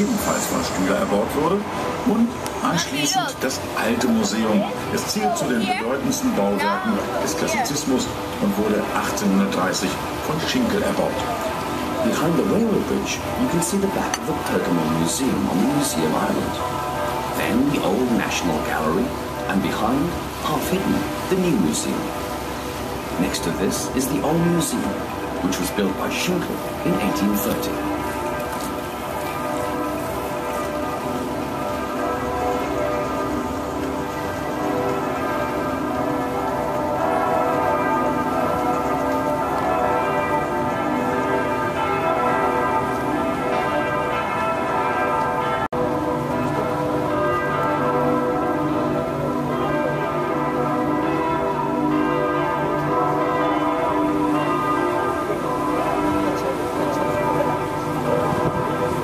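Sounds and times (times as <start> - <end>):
church bells pealing: 0.0 - 59.0.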